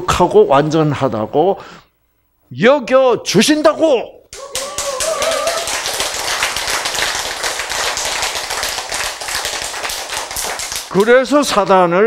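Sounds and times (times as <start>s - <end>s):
audience applauding: 4.4s - 11.1s.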